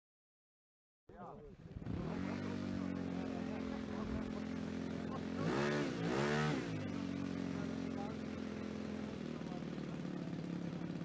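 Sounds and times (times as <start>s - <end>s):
model aircraft engine idling and revving: 1.1s - 11.0s.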